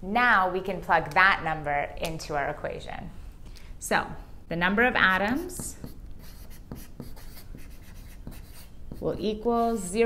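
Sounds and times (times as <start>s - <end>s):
chalk scratching on blackboard: 5.3s - 9.2s.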